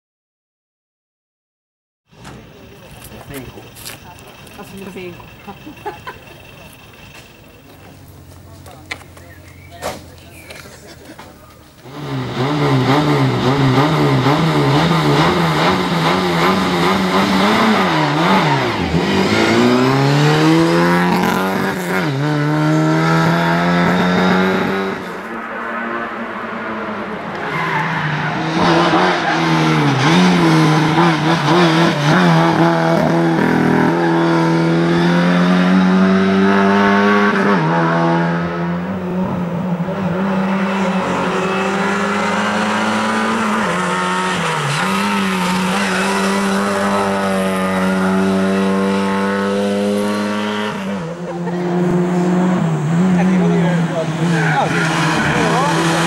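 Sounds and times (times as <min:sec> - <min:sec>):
rally car engine revving hard: 0:11.8 - 0:56.0.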